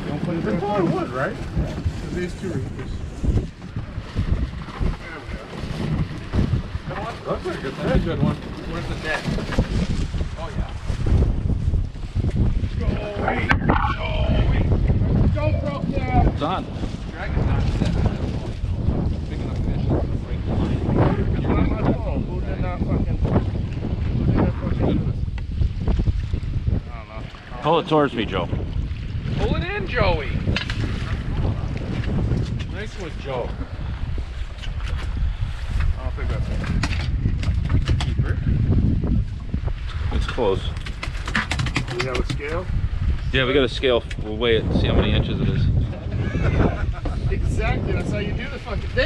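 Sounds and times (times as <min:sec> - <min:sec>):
boat rumbling in rough water: 0:00.0 - 0:49.0
strong wind buffeting microphone: 0:00.0 - 0:49.0
people calling out: 0:13.0 - 0:14.7
sharp knocks and clatters: 0:40.3 - 0:42.5.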